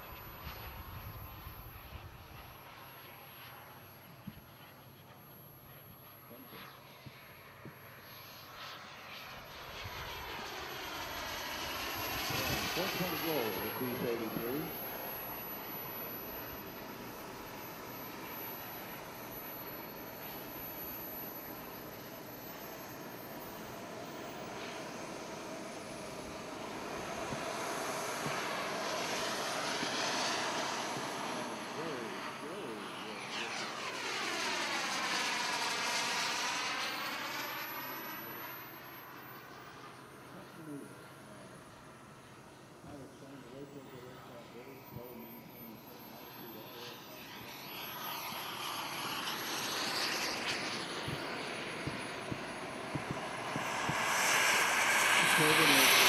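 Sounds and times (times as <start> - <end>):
model jet turbine whine: 0.0 - 56.0.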